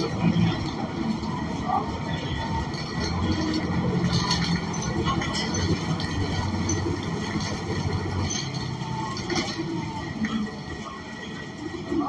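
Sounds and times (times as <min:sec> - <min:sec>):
body rattles and clicks: 0:00.0 - 0:10.8
bus engine low drone: 0:00.0 - 0:12.0.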